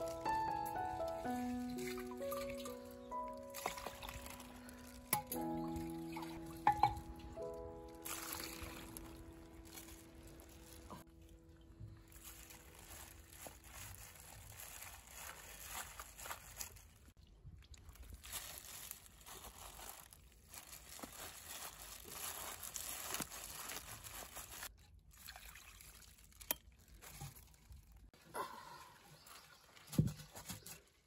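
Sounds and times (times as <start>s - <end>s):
ice crunching: 0.0s - 11.3s, 12.0s - 17.2s, 17.8s - 24.7s
water dripping: 0.0s - 13.0s
brine sloshing: 1.1s - 22.2s.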